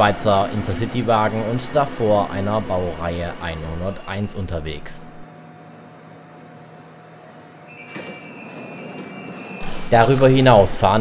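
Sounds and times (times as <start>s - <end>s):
faint low train hum: 0.0s - 11.0s
high door warning beep: 7.7s - 9.9s.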